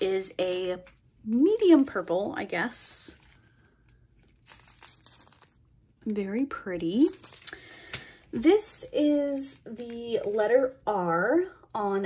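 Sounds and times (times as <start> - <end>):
plastic bag crinkling: 0.0 - 6.0, 6.8 - 8.4.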